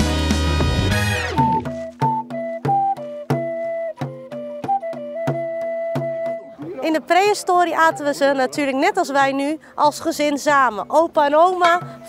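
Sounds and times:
flute playing slow melody: 0.5s - 6.6s
hand frame drum beating: 1.0s - 7.2s, 11.5s - 12.0s.

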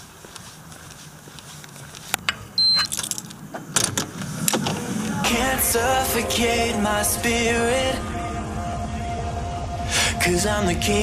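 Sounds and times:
low steady hum: 2.0s - 11.0s
door lock and handle clicking: 2.2s - 4.9s
short high electronic beep: 2.6s - 2.9s
keys jangling: 2.8s - 4.0s.

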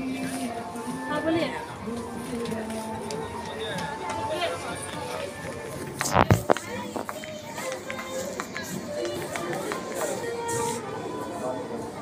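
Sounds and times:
background music: 0.0s - 12.0s
indistinct voices of shoppers: 0.0s - 12.0s.

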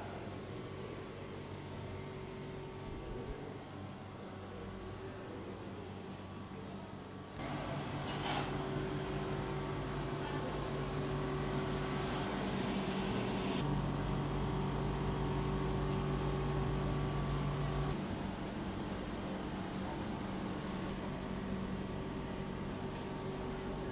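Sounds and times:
dehumidifier humming: 0.0s - 23.9s.

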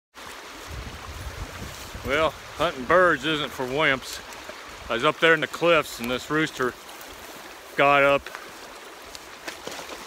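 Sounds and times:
creek water rushing: 0.2s - 10.0s
wind rumble on microphone: 0.5s - 3.1s.

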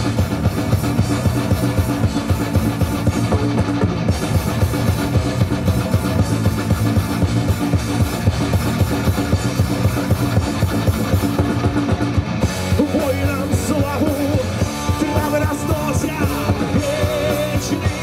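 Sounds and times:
bass guitar: 0.0s - 18.0s
drum kit beat: 0.0s - 18.0s
electric guitars: 0.0s - 18.0s
keyboards: 0.0s - 18.0s.

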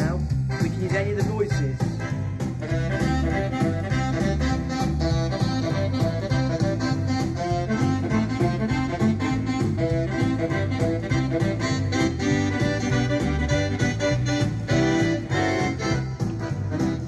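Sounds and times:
keyboard drums and bass accompaniment: 0.0s - 17.0s
keyboard melody: 0.0s - 17.0s.

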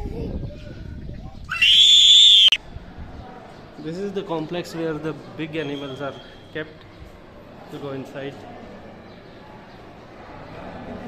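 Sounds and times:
shrill whistled animal call: 1.5s - 2.6s.

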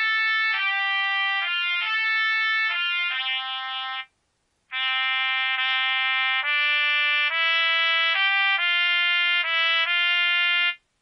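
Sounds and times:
solo trumpet slow melody: 0.0s - 4.1s, 4.7s - 10.8s.

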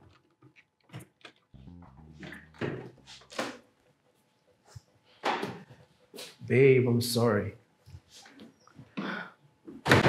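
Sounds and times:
low hum: 1.6s - 3.9s.

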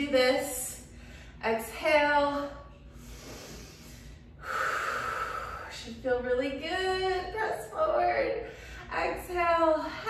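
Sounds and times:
woman exhaling: 4.4s - 5.8s.

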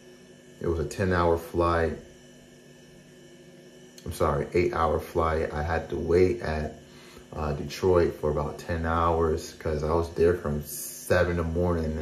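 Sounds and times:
faint electrical hum and hiss: 0.0s - 12.0s.

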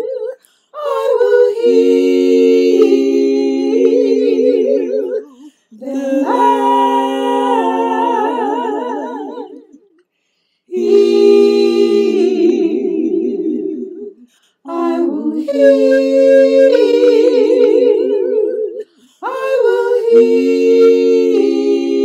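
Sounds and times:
woman singing layered harmony: 0.0s - 9.7s, 10.7s - 22.0s.

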